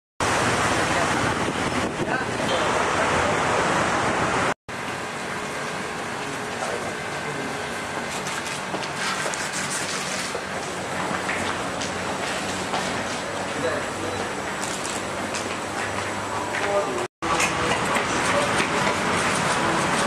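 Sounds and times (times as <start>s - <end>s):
wind buffeting microphone: 0.2s - 4.5s.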